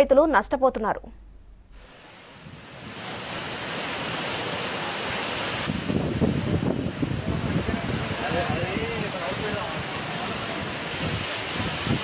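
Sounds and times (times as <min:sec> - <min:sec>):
heavy rain hissing: 0:01.8 - 0:12.0.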